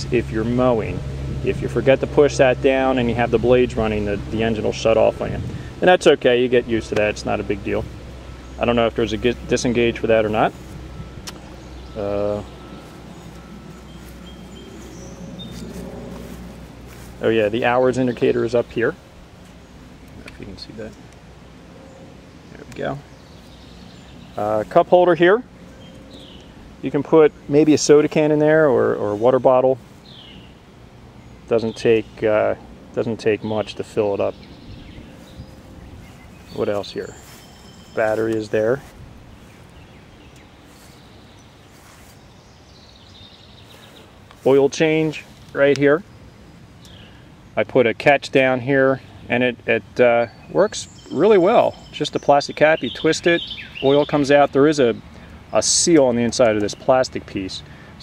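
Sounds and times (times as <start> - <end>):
steady low rumble: 0.0 - 42.8
birds chirping: 0.0 - 58.0
faint high repeating chirp: 36.4 - 38.2.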